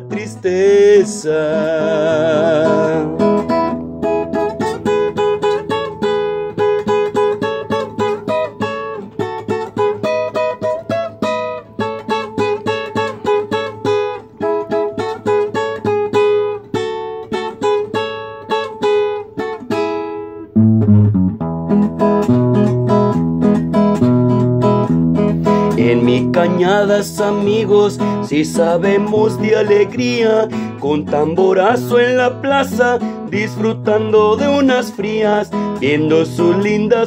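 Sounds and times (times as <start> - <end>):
solo acoustic guitar: 0.0 - 37.0.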